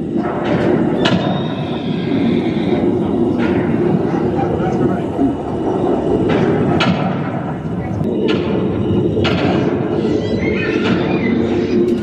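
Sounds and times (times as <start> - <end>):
whistling target sound effect: 1.0 - 2.6.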